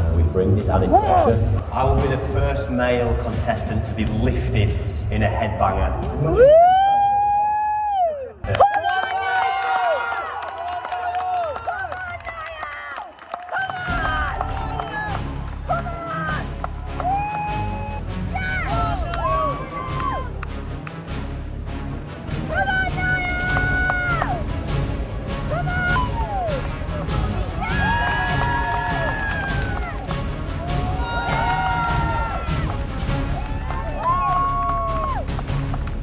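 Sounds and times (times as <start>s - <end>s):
sharp hand claps: 8.4s - 17.7s, 27.8s - 30.4s
person cheering cry: 17.0s - 20.3s, 30.8s - 32.7s, 33.4s - 35.2s.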